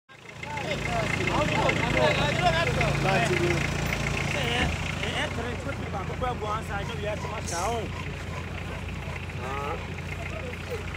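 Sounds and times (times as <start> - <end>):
idling engine hum: 0.1 - 10.9
voices talking: 0.1 - 10.9.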